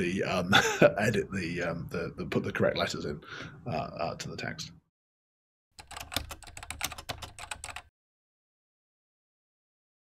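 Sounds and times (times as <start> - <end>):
keyboard keystroke clicks: 5.8 - 7.9.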